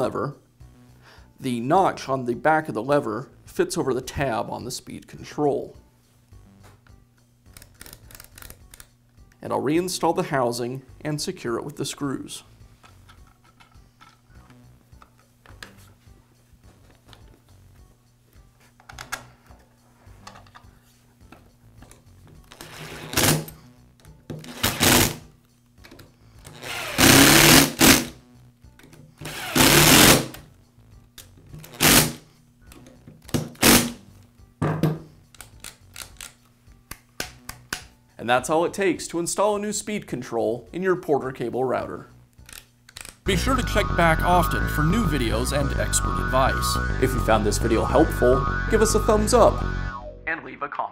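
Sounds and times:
power screwdriver driving screws: 0:24.4 - 0:25.2, 0:26.5 - 0:28.1, 0:29.2 - 0:30.3, 0:31.6 - 0:32.2, 0:33.6 - 0:33.9.

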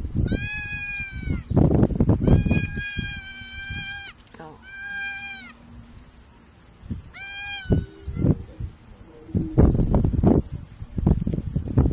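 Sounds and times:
fawn bleating in distress: 0:00.2 - 0:01.5, 0:02.2 - 0:05.6, 0:07.1 - 0:08.4.

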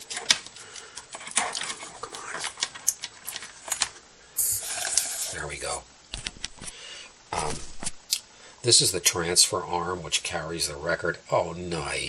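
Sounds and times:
rustling and scraping of objects: 0:00.0 - 0:08.1.

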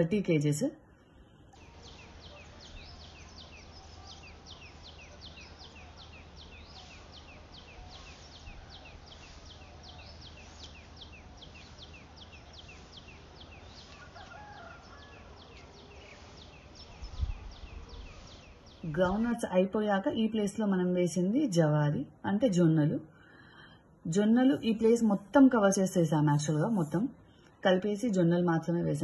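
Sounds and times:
faint outdoor noise: 0:00.0 - 0:29.0
bird chirping: 0:01.3 - 0:19.6.

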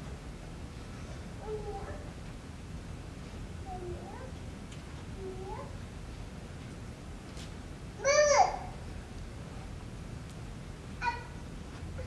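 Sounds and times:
low room murmur: 0:00.0 - 0:12.0.

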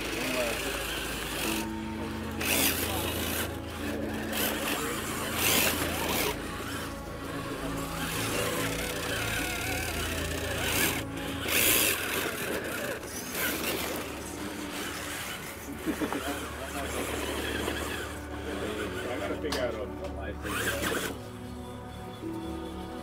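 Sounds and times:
tires scrabbling on rock: 0:00.0 - 0:21.2
motor and gears whining: 0:00.0 - 0:23.0.

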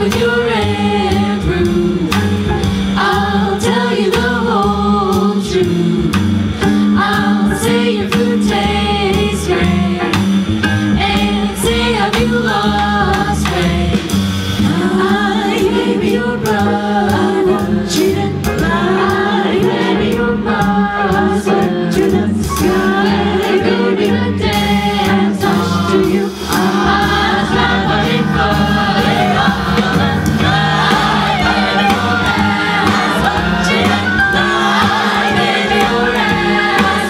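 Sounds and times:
upright bass: 0:00.0 - 0:37.0
vocal harmony singing: 0:00.0 - 0:37.0.

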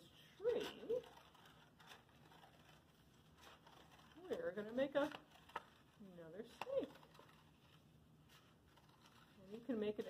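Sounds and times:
scissors cutting paper plate: 0:00.4 - 0:05.8.

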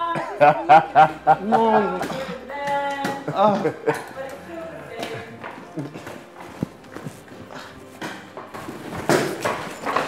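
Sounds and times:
heavy footsteps: 0:04.9 - 0:10.0.

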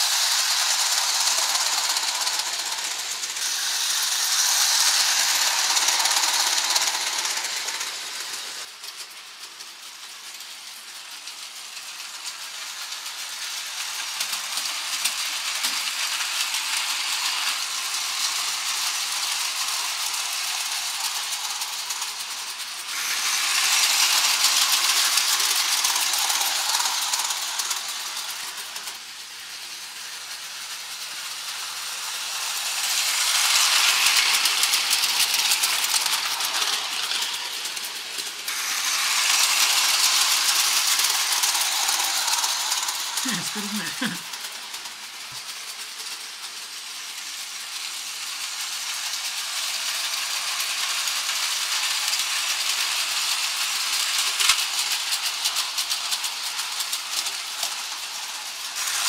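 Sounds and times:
model train wheels clattering: 0:00.0 - 0:59.0.

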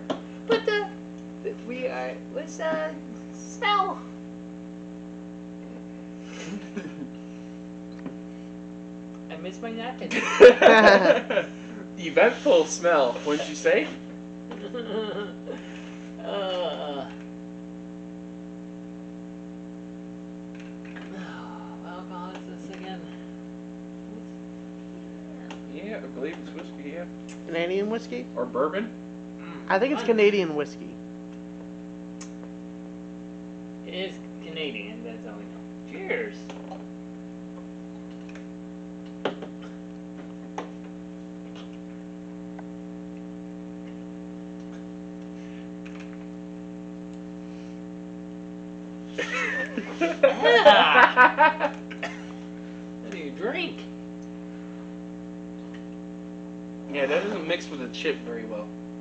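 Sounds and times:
electrical mains hum: 0:00.0 - 0:59.0.

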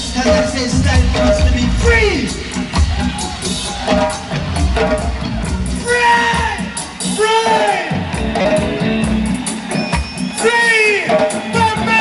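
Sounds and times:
reggae band playing: 0:00.0 - 0:12.0.

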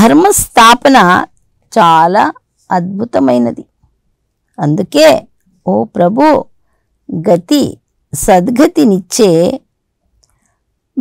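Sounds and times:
woman reading aloud: 0:00.0 - 0:03.7, 0:04.6 - 0:06.5, 0:07.1 - 0:09.6.

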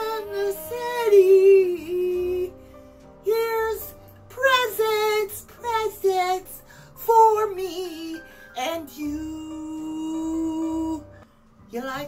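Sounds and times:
woman singing with vibrato: 0:00.0 - 0:02.6, 0:03.2 - 0:11.1
faint backing track: 0:00.0 - 0:12.0.

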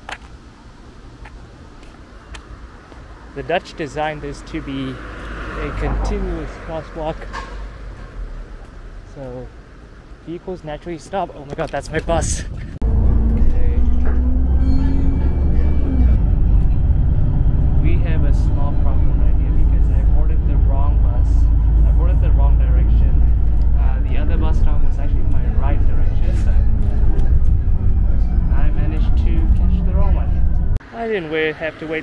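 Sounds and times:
bus engine and road rumble: 0:00.0 - 0:32.0
voices talking: 0:03.4 - 0:07.5, 0:10.2 - 0:32.0.

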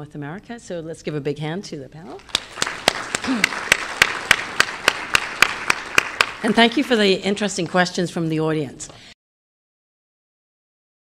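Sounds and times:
sharp hand claps close by: 0:02.2 - 0:06.6
audience applauding: 0:02.3 - 0:07.1.

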